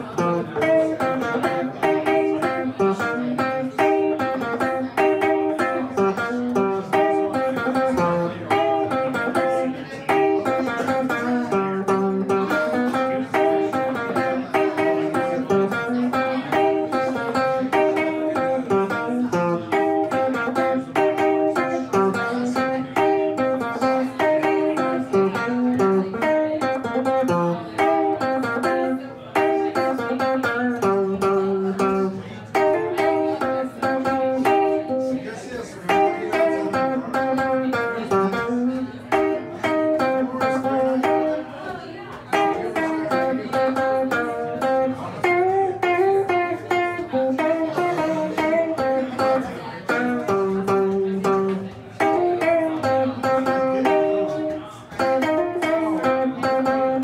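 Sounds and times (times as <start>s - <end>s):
electric guitar playing blues: 0.0s - 57.0s.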